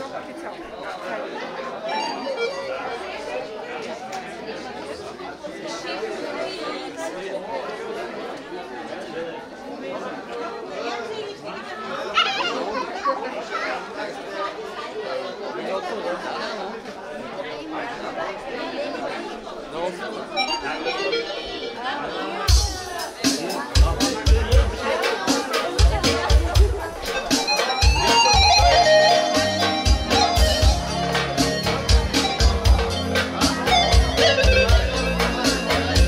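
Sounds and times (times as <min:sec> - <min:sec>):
crowd chatting: 0:00.0 - 0:36.0.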